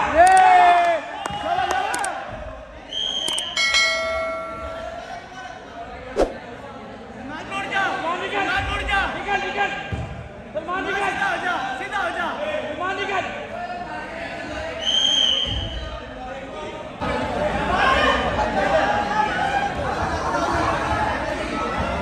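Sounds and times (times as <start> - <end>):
people talking and calling out: 0.0 - 22.0.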